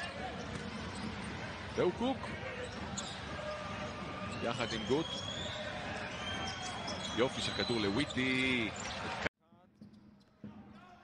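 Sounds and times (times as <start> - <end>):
basketball bouncing: 0.0 - 7.2
arena crowd noise: 0.0 - 9.3.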